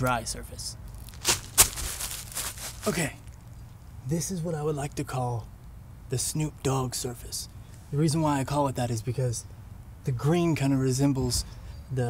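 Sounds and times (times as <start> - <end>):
hands scraping tree bark: 1.0 - 3.3.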